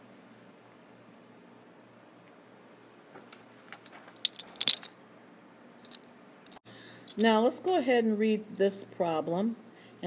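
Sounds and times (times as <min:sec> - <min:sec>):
paper and pen clicks and crackles: 0:03.3 - 0:04.9.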